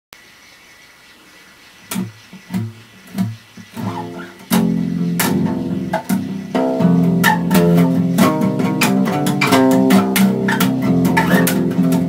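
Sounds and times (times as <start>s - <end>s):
faint hiss: 0.2s - 12.0s
acoustic bass guitar plucking: 1.9s - 12.0s.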